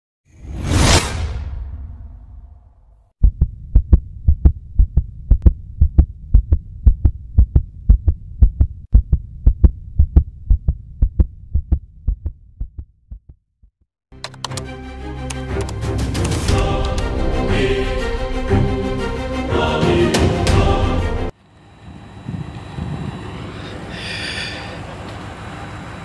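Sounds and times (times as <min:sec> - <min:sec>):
fast deep thumps: 0:03.2 - 0:13.7.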